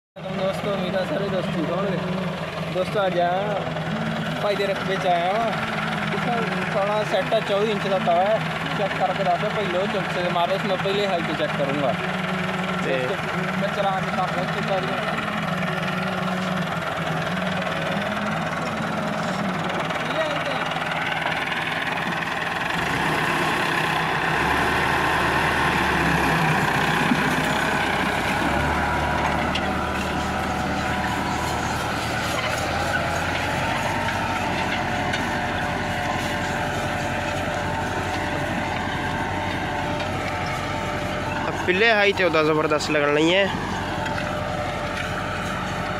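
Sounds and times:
tractor diesel engine running: 0:00.2 - 0:45.9.

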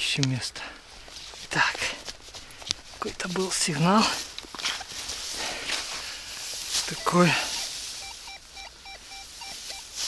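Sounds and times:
metal detector short beeps: 0:06.9 - 0:10.0.

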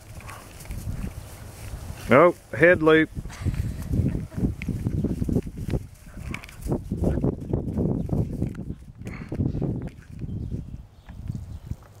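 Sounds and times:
puppy scuffling on grass: 0:00.0 - 0:08.9.

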